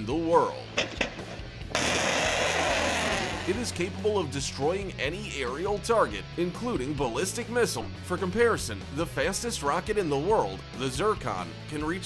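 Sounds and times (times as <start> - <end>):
low background music: 0.0 - 12.0
rocket motor rushing roar: 1.7 - 4.0.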